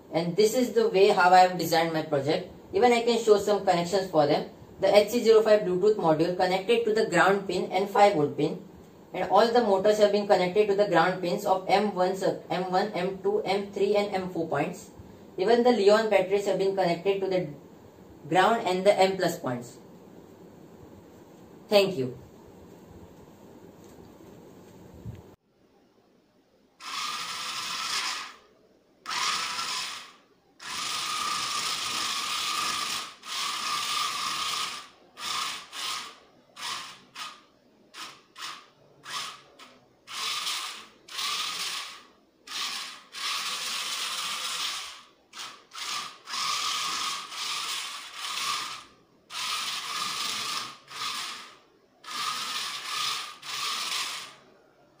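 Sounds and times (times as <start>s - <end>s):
small electric motors whining: 26.8s - 28.4s, 29.0s - 37.4s, 38.0s - 54.4s.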